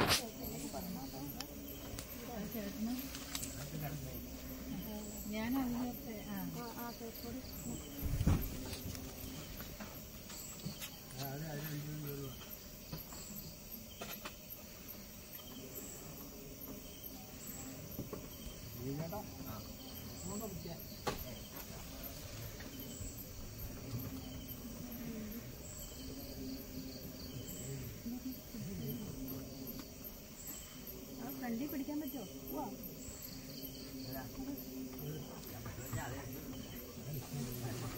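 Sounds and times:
crickets chirping: 0.0 - 37.9.

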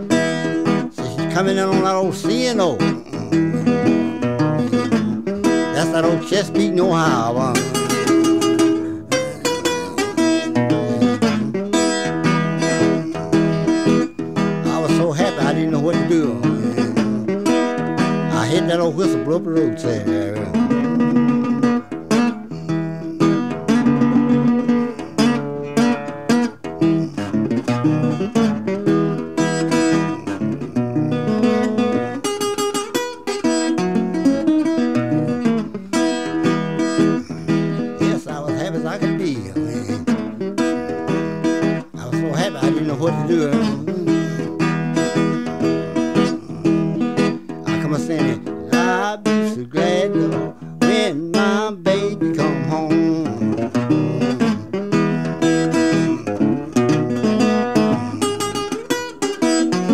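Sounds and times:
acoustic blues guitar: 0.0 - 59.9.

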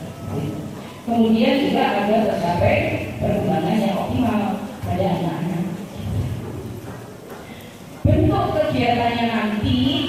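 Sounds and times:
woman speaking over loudspeakers: 0.3 - 5.9, 8.0 - 10.0.

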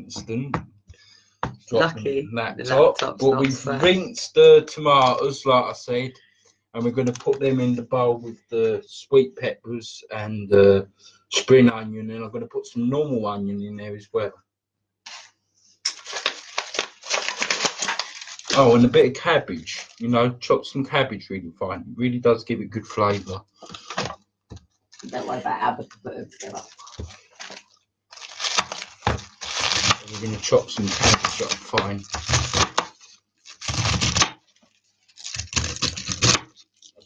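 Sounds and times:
onion skin crackling: 15.1 - 18.9, 26.4 - 37.0
knife cutting through cabbage: 30.8 - 34.4.

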